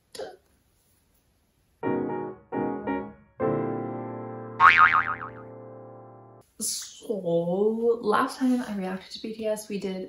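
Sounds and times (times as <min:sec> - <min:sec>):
cartoon boing sound effect: 0:04.6 - 0:05.5.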